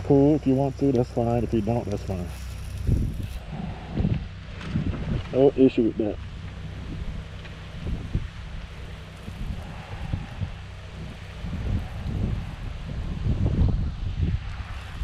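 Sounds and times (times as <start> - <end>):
spray wand hissing: 0.0 - 3.4
wind buffeting microphone: 0.0 - 15.0.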